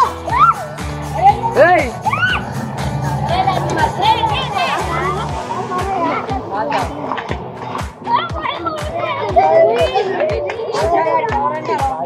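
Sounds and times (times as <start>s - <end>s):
children shouting excitedly: 0.0s - 6.4s, 8.0s - 12.0s
dance music with steady beat: 0.0s - 12.0s.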